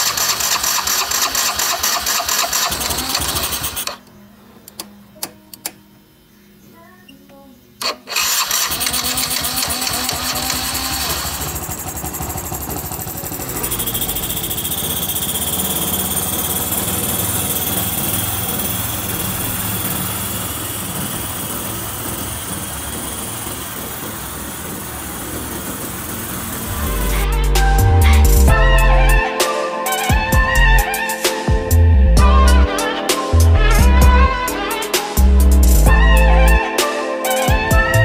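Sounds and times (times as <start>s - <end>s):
scooter engine starting and running: 0.0s - 4.1s, 7.8s - 29.2s.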